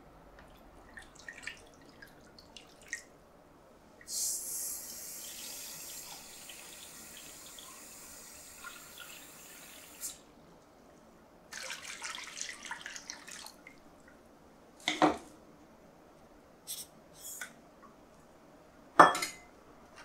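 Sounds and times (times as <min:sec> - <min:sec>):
water splashing: 0:00.9 - 0:03.1.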